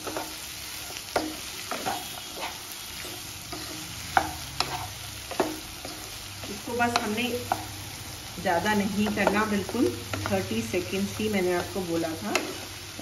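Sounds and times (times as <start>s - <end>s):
spatula scraping a pan: 0.0s - 7.7s, 11.6s - 13.0s
vegetables sizzling in a pan: 0.0s - 13.0s
spatula knocking against a pan: 9.0s - 10.5s.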